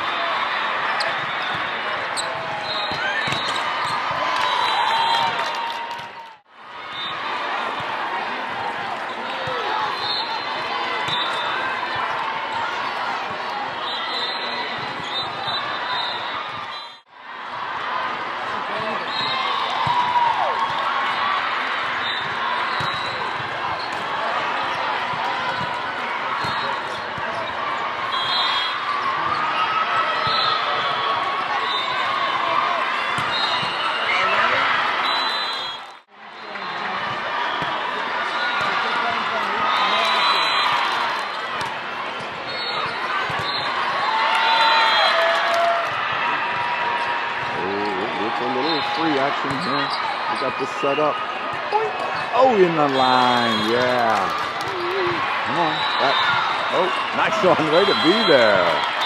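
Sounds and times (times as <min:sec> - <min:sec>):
ball bouncing on court floor: 0:02.3 - 0:04.2, 0:22.8 - 0:24.1
hubbub of voices: 0:06.0 - 0:44.6, 0:45.3 - 0:59.0.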